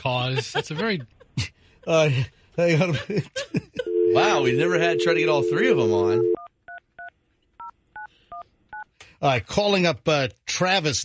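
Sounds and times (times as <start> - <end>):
touch-tone keypad beeps: 3.9 - 6.5.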